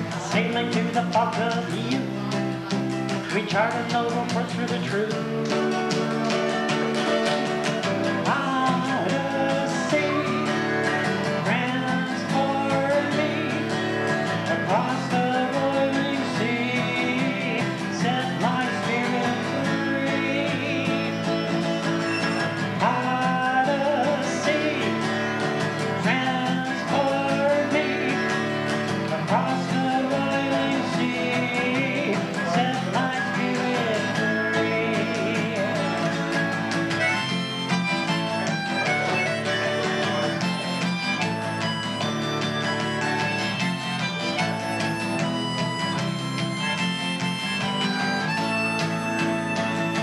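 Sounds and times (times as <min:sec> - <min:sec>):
acoustic guitar strumming: 0:00.0 - 0:50.0
bending lead guitar melody: 0:00.0 - 0:50.0.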